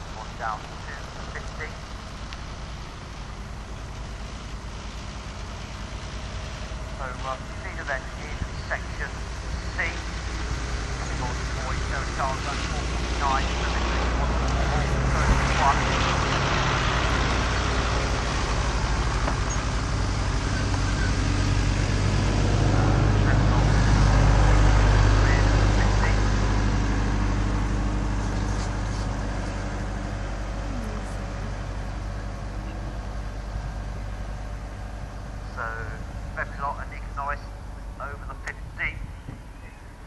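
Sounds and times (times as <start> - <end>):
engine drone passing by: 0.0 - 40.0.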